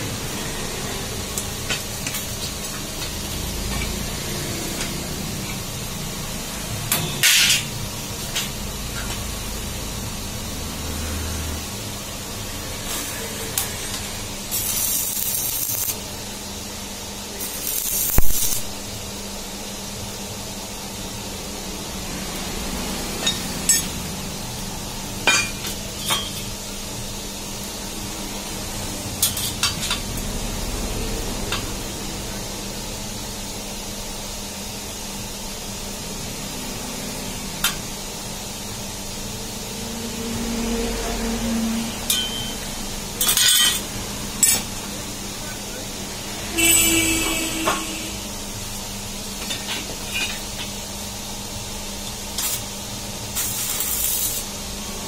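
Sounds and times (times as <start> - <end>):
welder crackling hiss: 0.0 - 39.9, 41.4 - 55.0
electrical hum: 0.0 - 55.0.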